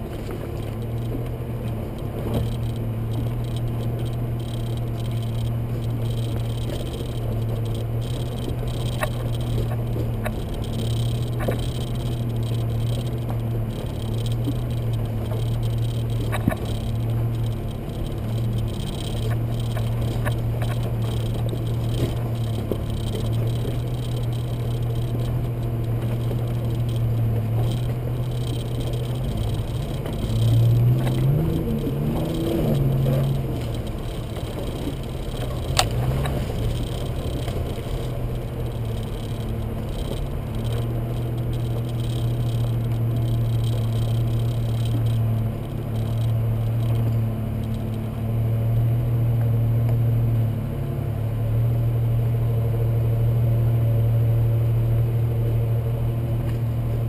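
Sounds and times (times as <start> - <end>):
car engine humming: 0.0 - 57.0.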